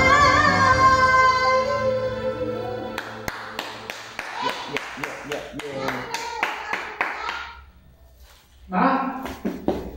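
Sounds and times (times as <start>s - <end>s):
karaoke song: 0.0s - 4.5s
hand clapping: 3.0s - 7.5s.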